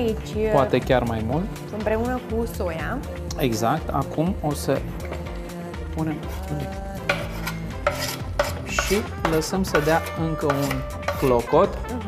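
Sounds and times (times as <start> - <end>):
knife scraping cutting board: 6.1 - 11.5.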